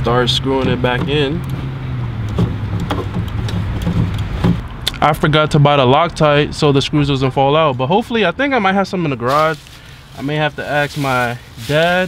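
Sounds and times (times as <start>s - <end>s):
car engine idling: 0.0s - 4.8s.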